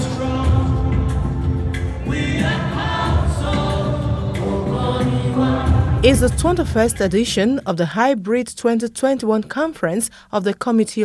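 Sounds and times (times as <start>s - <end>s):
choir singing: 0.0s - 7.5s.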